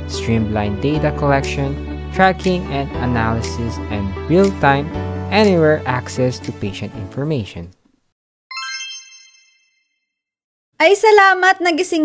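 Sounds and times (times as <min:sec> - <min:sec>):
bright chime sound effect: 0:08.5 - 0:10.1.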